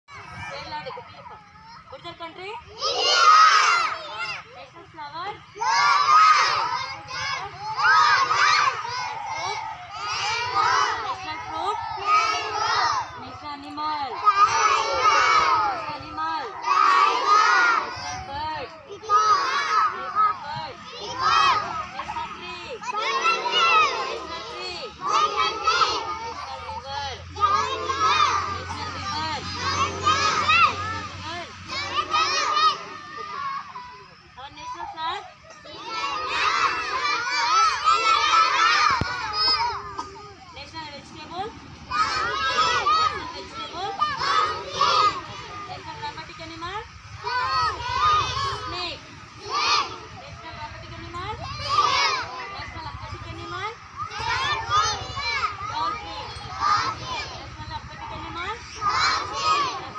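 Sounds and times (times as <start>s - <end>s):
young children's voices: 0.1s - 59.9s.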